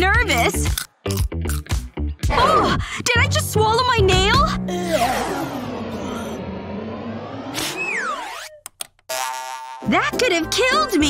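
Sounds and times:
cartoon swooping sweep: 4.8s - 8.6s
falling whistle-like glide: 5.4s - 8.6s.

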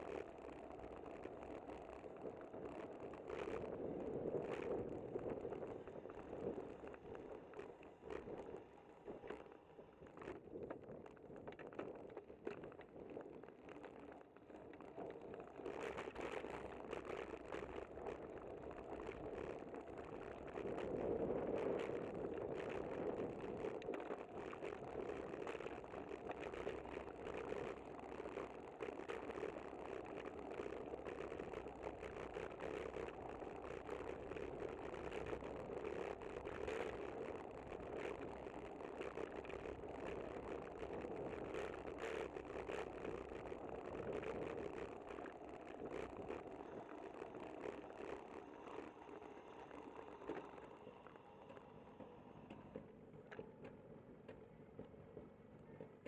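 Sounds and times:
bicycle road and wind noise: 0.0s - 56.0s
small rattles and clicks: 0.0s - 56.0s.

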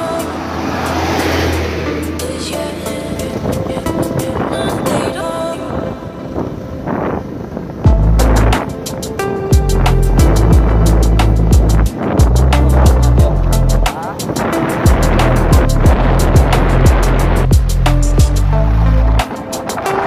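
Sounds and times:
music with heavy bass and drums: 7.9s - 20.0s.

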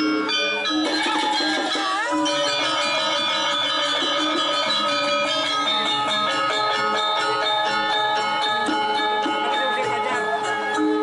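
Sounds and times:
gamelan dance music: 0.0s - 11.0s.

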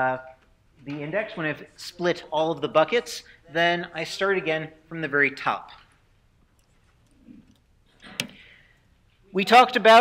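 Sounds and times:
short breath: 8.0s - 9.0s.

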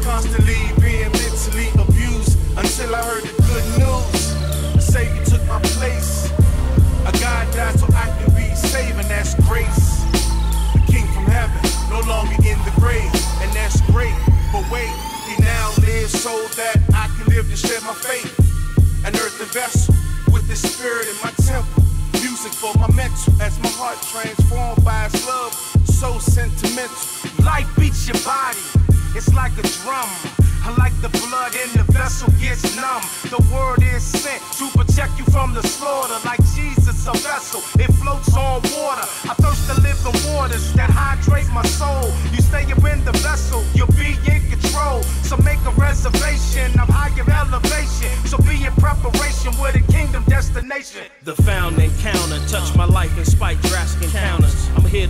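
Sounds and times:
steady held bass: 0.0s - 16.2s, 16.8s - 17.6s, 21.4s - 22.2s, 22.8s - 23.6s, 24.4s - 25.2s, 25.9s - 26.6s, 28.9s - 29.7s, 31.8s - 32.7s, 33.4s - 34.2s, 34.8s - 35.7s, 36.4s - 37.2s, 37.8s - 38.7s, 39.4s - 50.6s, 51.4s - 55.0s
rapping over heavy bass beat: 0.0s - 55.0s.

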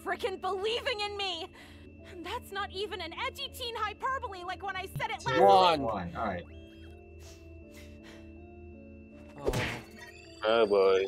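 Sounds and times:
soundtrack music: 5.0s - 6.5s.

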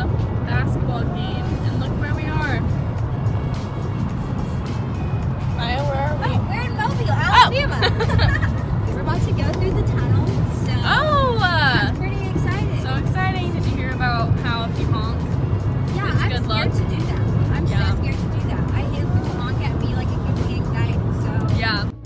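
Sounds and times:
music playing in car: 0.0s - 22.0s
road noise in car cabin: 0.0s - 22.0s.

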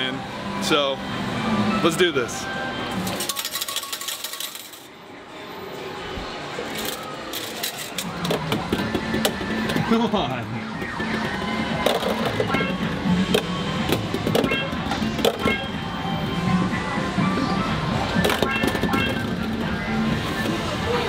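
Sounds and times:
balls clacking in ball-toss machine: 3.0s - 4.9s, 6.8s - 10.2s, 10.8s - 15.8s, 18.1s - 20.7s
electronic arcade game music: 7.9s - 21.0s.

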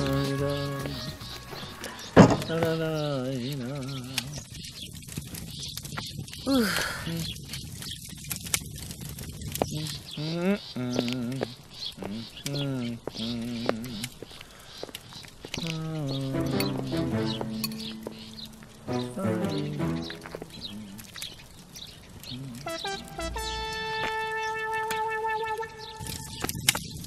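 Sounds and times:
background film music: 0.0s - 1.9s, 16.2s - 20.7s, 22.6s - 26.4s.

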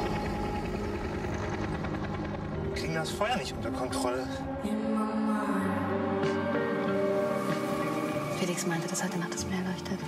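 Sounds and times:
helicopter rotor beating: 0.0s - 4.6s.

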